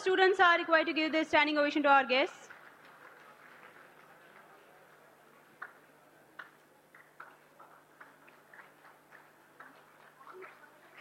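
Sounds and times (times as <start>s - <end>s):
audience clapping: 2.4s - 11.0s.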